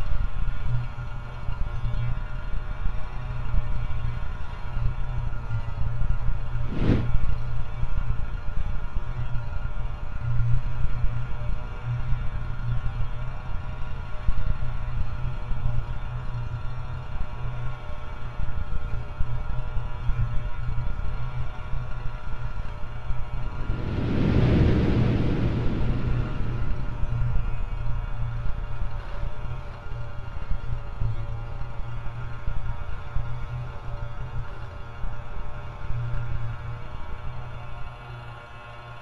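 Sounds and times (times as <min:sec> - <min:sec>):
pulsing low hum: 0:06.0 - 0:07.8, 0:19.2 - 0:33.6
rushing swell of noise: 0:06.6 - 0:07.2, 0:23.1 - 0:28.4.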